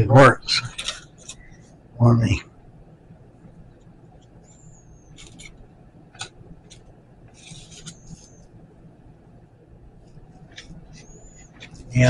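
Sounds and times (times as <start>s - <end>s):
thin high squeaks: 7.3s - 8.5s.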